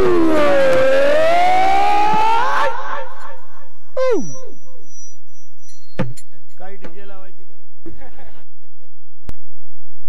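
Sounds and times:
singers holding a long note: 0.0 - 4.2
short vocal call dropping in pitch: 2.2 - 4.5.

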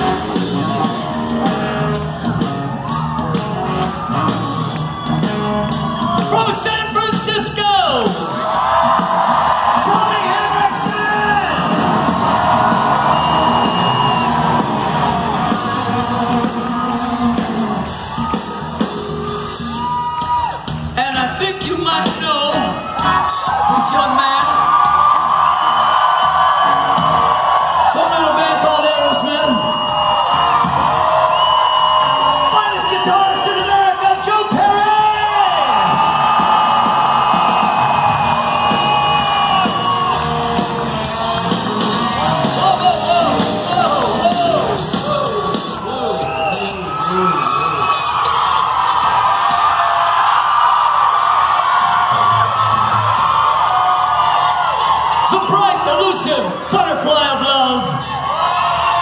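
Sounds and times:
audience yelling and whooping: 0.0 - 59.0
live rock band playing: 0.0 - 59.0.

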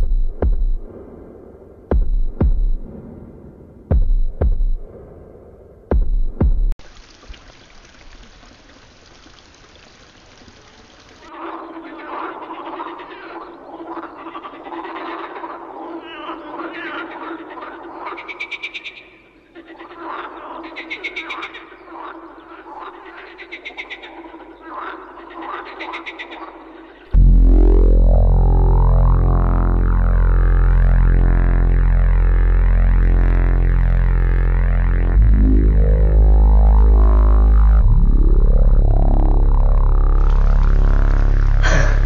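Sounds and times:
steady tone: 0.0 - 6.8, 27.2 - 42.0
frogs croaking: 7.0 - 27.2.

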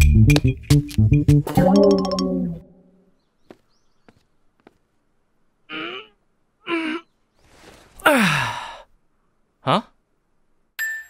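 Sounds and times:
man yawning sigh: 8.0 - 8.9.

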